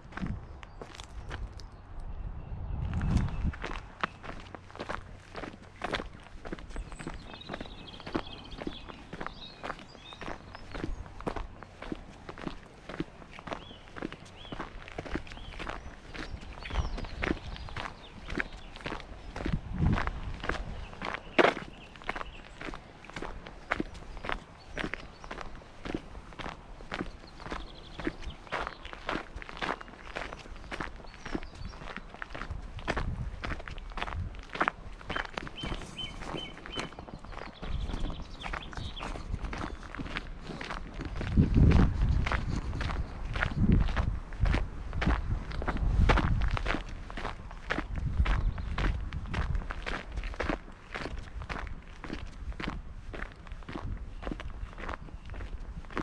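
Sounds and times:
footsteps on gravel: 0:00.0 - 0:01.7, 0:02.9 - 0:56.0.

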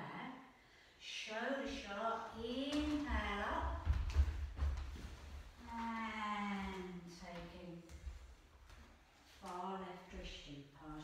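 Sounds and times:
woman speaking with drawn-out vowels: 0:05.6 - 0:07.9.

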